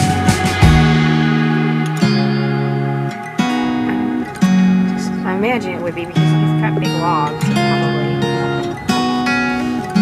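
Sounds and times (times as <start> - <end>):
guitar chords: 0.0 - 10.0.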